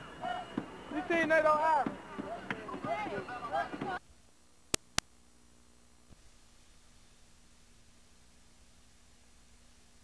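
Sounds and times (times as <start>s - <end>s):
people calling out excitedly: 0.0s - 4.0s.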